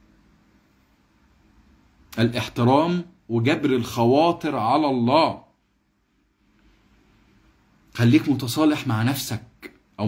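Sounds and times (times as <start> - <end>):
man speaking: 2.1 - 5.6, 7.9 - 10.0.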